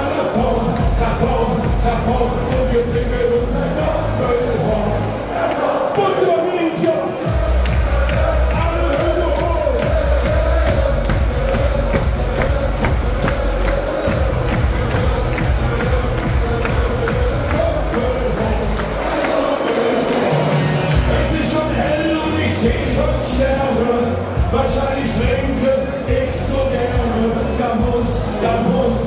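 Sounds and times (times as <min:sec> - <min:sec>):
thumping bass beat: 0:00.0 - 0:05.2, 0:07.2 - 0:23.6, 0:24.2 - 0:29.0
crowd singing along: 0:00.0 - 0:29.0
party music over pa: 0:00.0 - 0:29.0.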